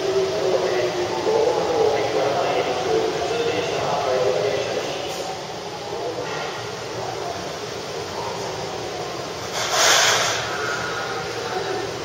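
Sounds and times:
air hiss: 9.5 - 11.2.

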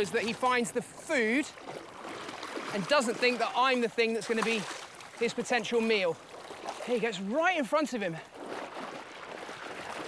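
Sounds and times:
seawater splashing and sloshing: 0.0 - 10.0.

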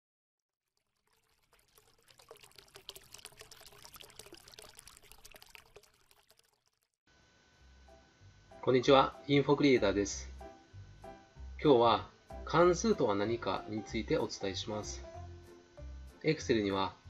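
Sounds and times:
faint trickling with crackles: 0.7 - 7.0.

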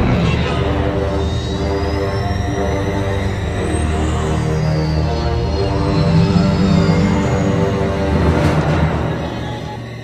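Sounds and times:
ominous orchestral music: 0.0 - 10.0.

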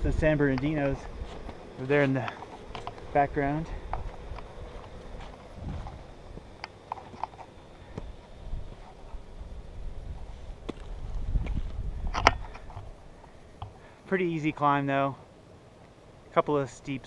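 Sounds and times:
wind rumbling on microphone: 0.0 - 1.8, 2.6 - 6.5, 7.9 - 13.7
camera handling clicks and knocks: 12.1 - 12.9.

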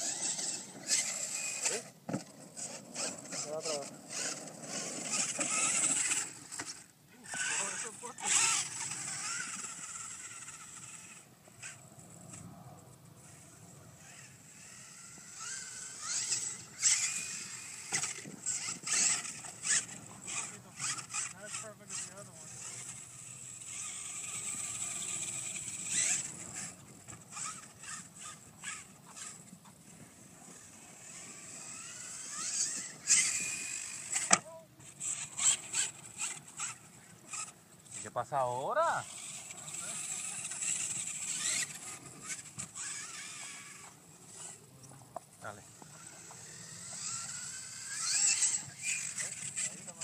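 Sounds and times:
electric motor whining: 0.0 - 50.0.

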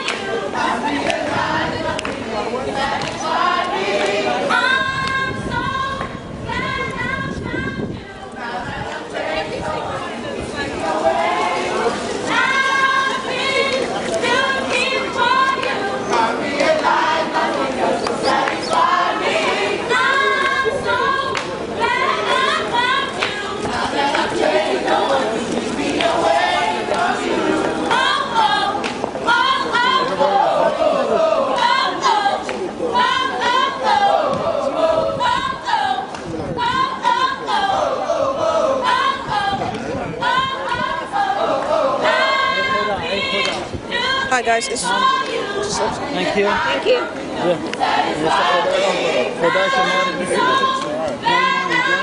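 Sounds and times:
choir singing gospel: 0.0 - 52.0.

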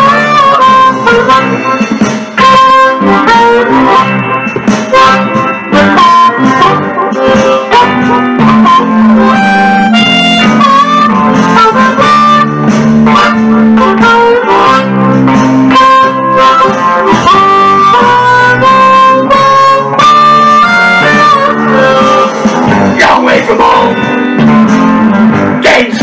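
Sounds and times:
backing track with guitar: 0.0 - 26.0
blues harmonica with bent notes: 0.0 - 26.0.

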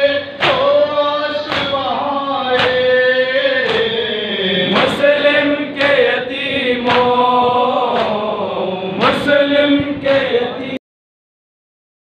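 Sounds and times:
men chanting a lament: 0.0 - 10.8
chest-beating slaps: 0.4 - 0.8, 1.5 - 1.9, 3.6 - 4.0, 4.7 - 6.2, 6.8 - 8.3.

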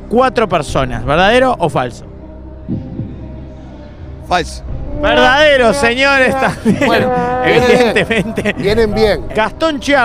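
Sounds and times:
throbbing heartbeat-like pulse: 2.6 - 3.5
person murmuring: 4.9 - 8.8.

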